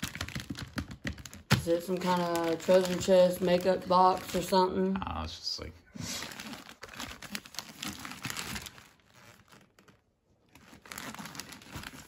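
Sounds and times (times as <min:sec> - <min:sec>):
wrapping paper crinkling and tearing: 0:00.0 - 0:04.7, 0:06.1 - 0:12.0.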